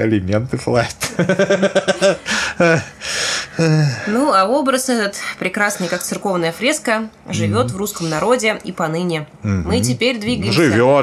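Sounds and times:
men talking: 0:00.0 - 0:04.2, 0:07.3 - 0:08.2, 0:09.4 - 0:11.0
breathy gasps: 0:02.2 - 0:04.3.

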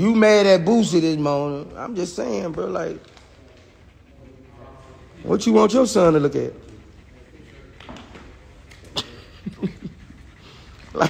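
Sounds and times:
man chuckling: 0:08.8 - 0:11.0.

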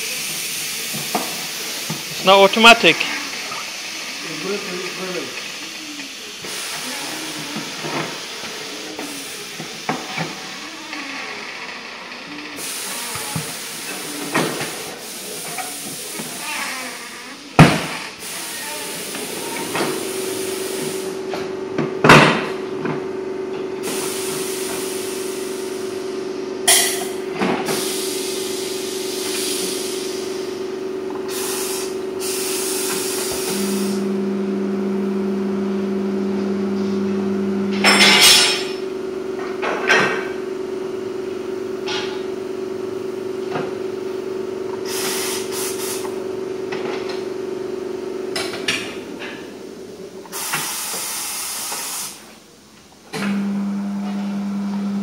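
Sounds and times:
compressed air hisses: 0:03.1 - 0:10.6, 0:12.6 - 0:17.4, 0:18.0 - 0:21.2, 0:23.8 - 0:25.8, 0:27.6 - 0:30.6, 0:31.2 - 0:34.0, 0:44.8 - 0:46.1, 0:50.3 - 0:52.3
machine hum: 0:25.2 - 0:50.3, 0:53.2 - 0:55.0
low motor tone: 0:33.2 - 0:42.3, 0:53.2 - 0:55.0.

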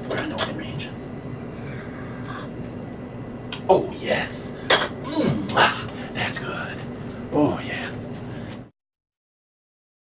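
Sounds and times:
low hum of room tone: 0:00.0 - 0:08.7.

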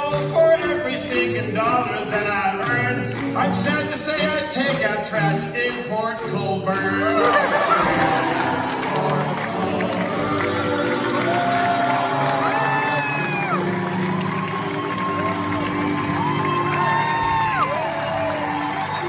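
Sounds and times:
grand piano playing hoedown tune: 0:00.0 - 0:19.0
audience cheering and applauding: 0:05.6 - 0:19.0
long whoops: 0:11.2 - 0:19.0.

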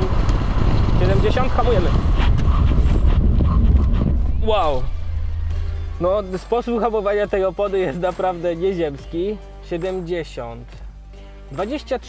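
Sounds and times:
wind and road noise rumble: 0:00.0 - 0:07.2.

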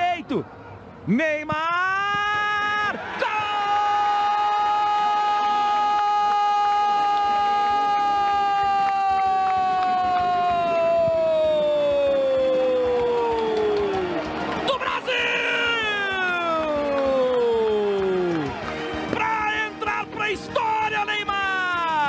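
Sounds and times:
person shouting: 0:01.7 - 0:13.5.

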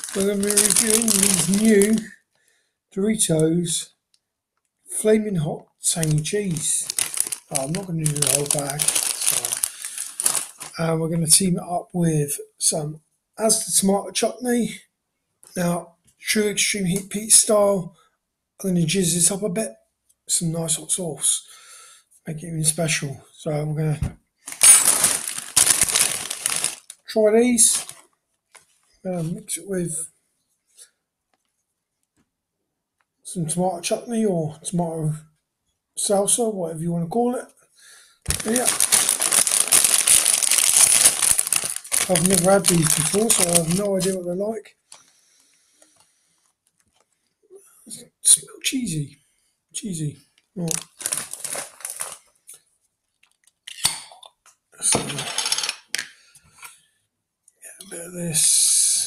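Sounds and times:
plastic bag crinkling: 0:00.0 - 0:02.1, 0:05.9 - 0:10.9, 0:24.5 - 0:28.8, 0:38.3 - 0:44.2, 0:50.6 - 0:52.4, 0:53.1 - 0:53.6
crisp packet rustling: 0:00.0 - 0:02.2, 0:05.9 - 0:10.9, 0:24.5 - 0:28.9, 0:38.3 - 0:44.2, 0:50.6 - 0:52.4, 0:53.1 - 0:53.6.

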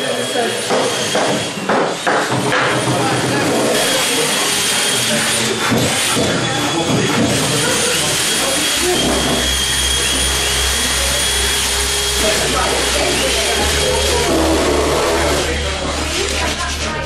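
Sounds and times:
indistinct voices talking: 0:00.0 - 0:17.0
cordless drill whirring: 0:03.1 - 0:16.5.

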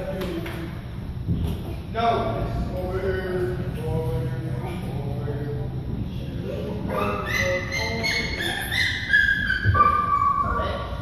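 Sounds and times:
indoor background hubbub: 0:00.0 - 0:11.0
child squealing: 0:06.9 - 0:10.7.

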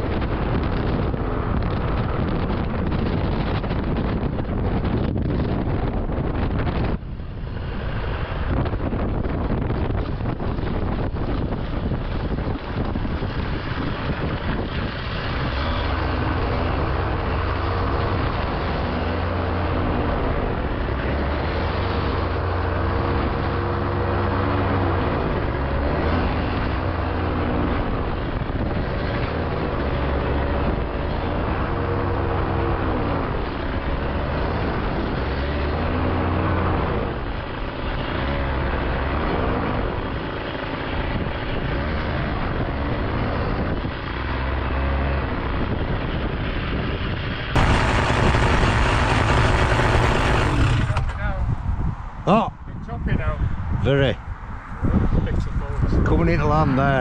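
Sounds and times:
wind: 0:00.0 - 0:57.0
microlight engine running: 0:47.6 - 0:51.5.

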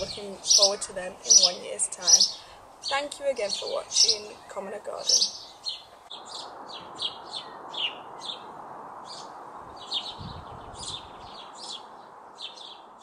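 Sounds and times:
small birds chirping: 0:00.0 - 0:13.0
steady background hiss: 0:00.0 - 0:13.0.

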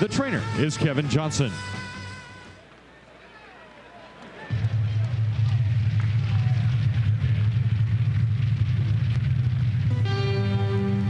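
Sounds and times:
faint voices: 0:00.0 - 0:07.7
crowd din: 0:00.0 - 0:11.0
loud low rumble: 0:04.5 - 0:11.0.

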